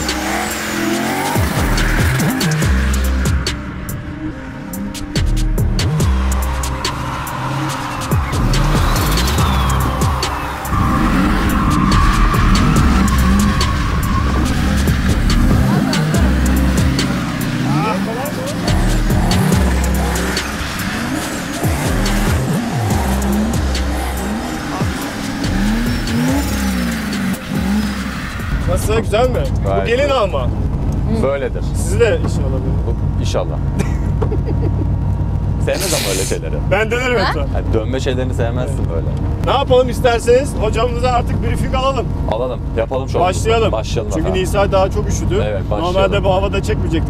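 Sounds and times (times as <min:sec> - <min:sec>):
tyres squealing: 0:00.0 - 0:04.0, 0:04.7 - 0:30.4, 0:35.6 - 0:36.5
car engine revving: 0:00.0 - 0:47.0.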